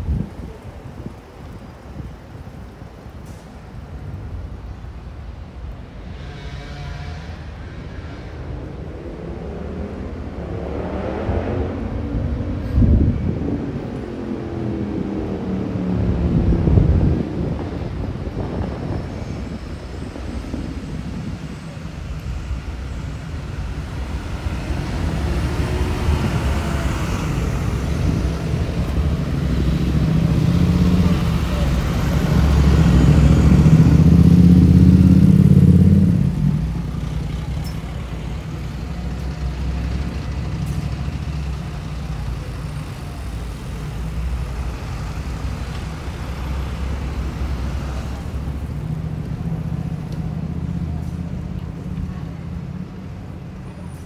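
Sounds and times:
vehicle engine rumble passing: 0:00.0 - 0:54.0.

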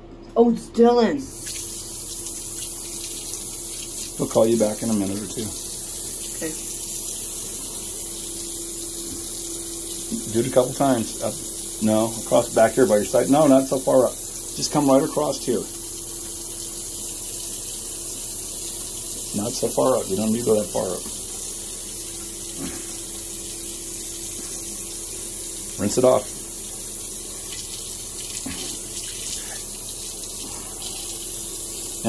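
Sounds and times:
faint steady hum: 0:00.0 - 0:32.0
tap water running into sink: 0:01.3 - 0:32.0.

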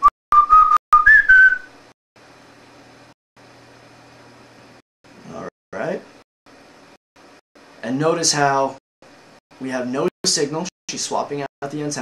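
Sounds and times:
person whistling high notes: 0:00.0 - 0:01.7.

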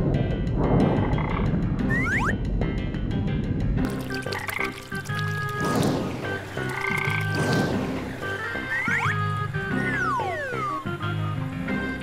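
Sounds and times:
light background music: 0:00.0 - 0:12.0
frog croaking: 0:00.9 - 0:02.2, 0:04.0 - 0:10.9.

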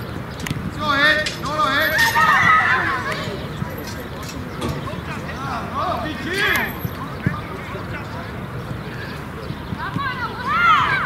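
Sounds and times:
children shouting: 0:01.5 - 0:03.7, 0:09.8 - 0:11.0.

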